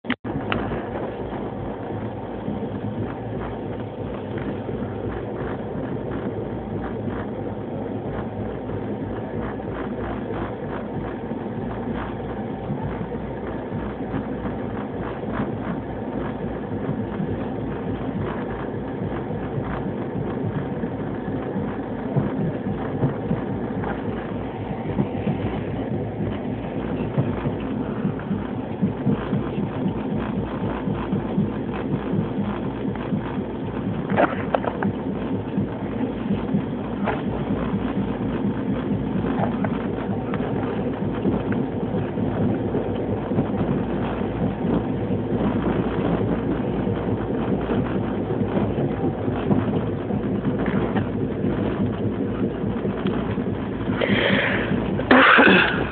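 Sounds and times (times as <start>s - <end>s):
train rumbling at speed: 0.0s - 55.9s
wheels clattering over rail joints: 0.1s - 55.9s.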